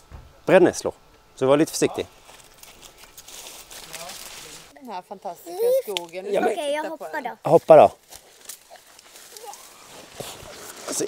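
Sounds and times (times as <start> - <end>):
leaves and stems rustling: 1.6 - 11.0.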